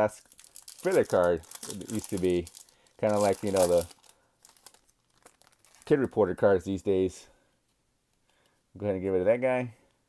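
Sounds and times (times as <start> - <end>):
person speaking: 0.0 - 4.0, 5.7 - 7.4
cards crinkling: 0.0 - 6.2
foil wrapper tearing: 0.2 - 6.0.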